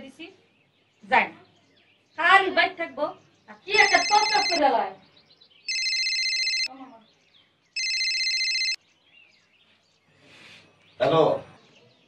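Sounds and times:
phone electronic trilling ringtone: 3.8 - 4.6, 5.7 - 6.7, 7.8 - 8.8.

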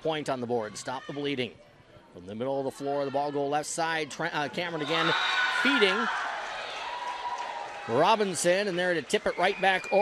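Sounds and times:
crowd cheering and yelling: 4.1 - 10.0.

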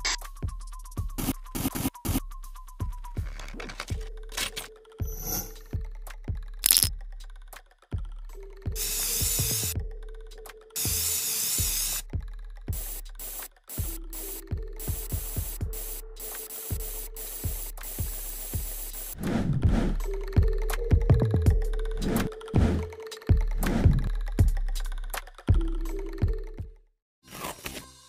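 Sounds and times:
background music: 0.0 - 28.0
spray paint can hissing: 8.8 - 9.8, 10.8 - 12.0, 12.8 - 19.2.

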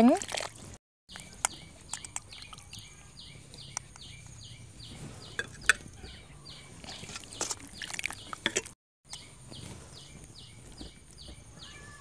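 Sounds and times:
bird chirping: 1.1 - 8.4, 9.1 - 12.0.

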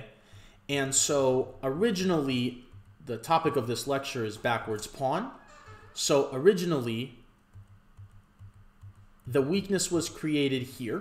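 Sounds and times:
soft taps on computer keyboard: 7.4 - 9.3.

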